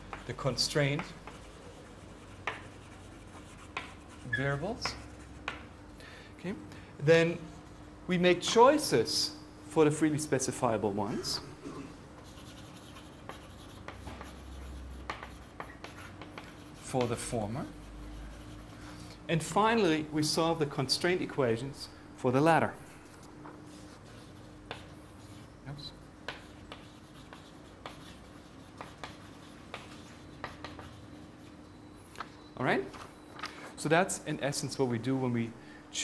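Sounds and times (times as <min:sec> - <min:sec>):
chalk scratching on chalkboard: 0:00.0 - 0:05.7, 0:12.2 - 0:19.2, 0:23.7 - 0:31.6
faint room hum: 0:00.0 - 0:36.0.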